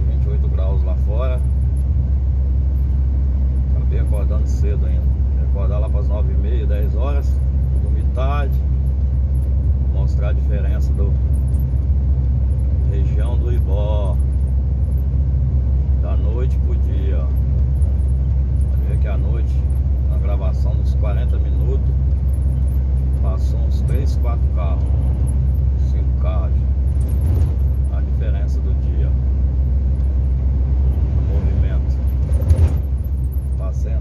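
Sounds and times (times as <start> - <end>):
diesel truck engine drone: 0.0 - 34.0
road noise: 0.0 - 34.0.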